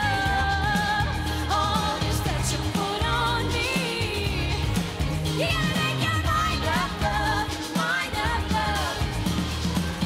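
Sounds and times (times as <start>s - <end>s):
pop-rock band with electric guitar: 0.0s - 10.0s.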